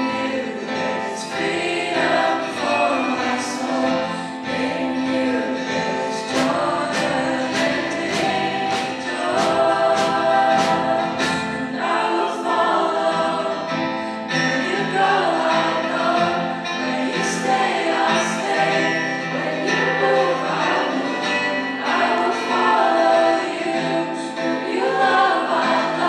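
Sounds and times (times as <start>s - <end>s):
band playing worship song: 0.0s - 26.0s
strummed acoustic guitar: 0.0s - 26.0s
women singing: 0.0s - 26.0s.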